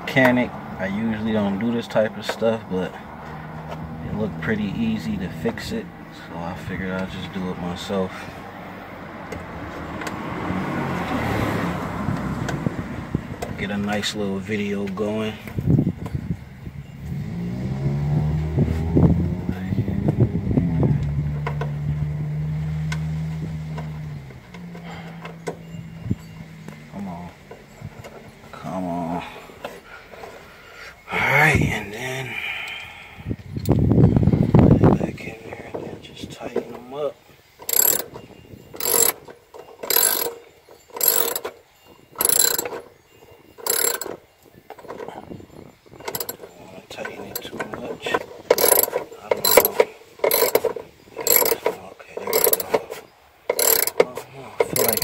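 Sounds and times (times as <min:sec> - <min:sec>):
ratchet wrench clicking: 0:37.6 - 0:38.1, 0:38.8 - 0:39.2, 0:39.8 - 0:41.6, 0:42.2 - 0:42.8, 0:43.6 - 0:44.2, 0:46.1 - 0:46.4, 0:48.5 - 0:52.8, 0:53.5 - 0:55.0
tools being handled: 0:37.6 - 0:38.2, 0:38.8 - 0:43.0, 0:43.6 - 0:45.1, 0:46.0 - 0:46.5, 0:48.5 - 0:55.0.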